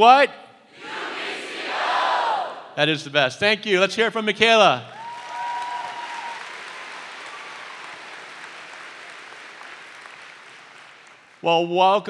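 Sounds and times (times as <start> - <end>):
crowd applauding: 4.9 - 11.5.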